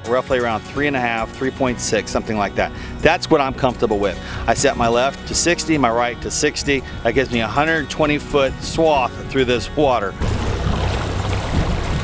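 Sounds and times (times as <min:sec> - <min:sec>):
boat engine rumbling: 0:00.0 - 0:12.0.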